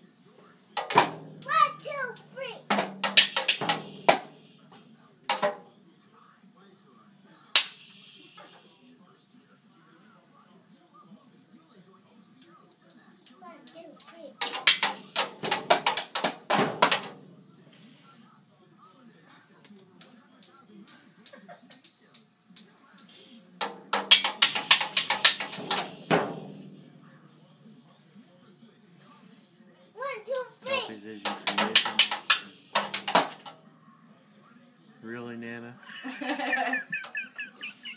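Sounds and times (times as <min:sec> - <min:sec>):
toy drum kit hits: 0:00.8 - 0:01.6, 0:02.7 - 0:04.4, 0:05.3 - 0:05.7, 0:14.4 - 0:17.2, 0:23.6 - 0:26.8, 0:31.2 - 0:33.5.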